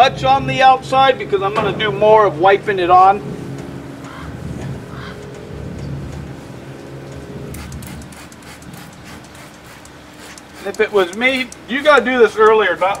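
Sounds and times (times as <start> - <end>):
engine hum: 0.0 - 13.0
spray bottle hissing: 7.5 - 12.0.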